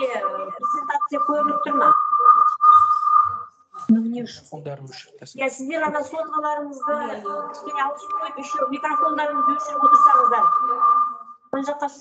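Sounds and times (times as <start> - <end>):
faint voices: 0.0 - 3.0, 3.8 - 12.0
high-pitched feedback tone: 0.0 - 4.0, 5.8 - 11.6.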